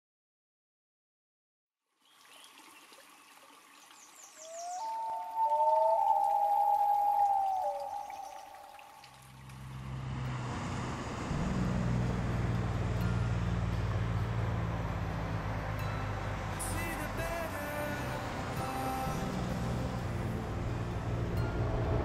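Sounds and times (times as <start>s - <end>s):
water trickling over rocks: 1.9s - 21.9s
bird chirps: 3.9s - 9.2s
loon wailing call: 4.4s - 9.2s
truck engine rumble: 9.3s - 22.0s.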